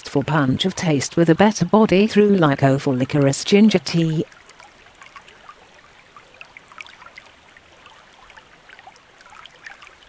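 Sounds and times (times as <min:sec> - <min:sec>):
faint trickling water: 0:00.0 - 0:10.0.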